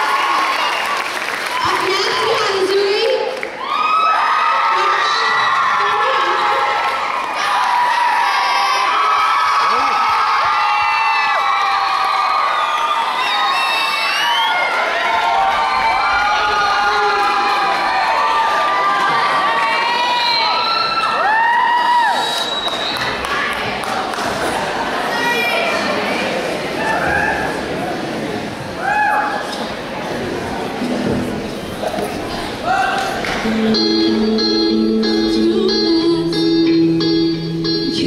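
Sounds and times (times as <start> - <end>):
audience cheering and screaming: 0.0 - 23.9.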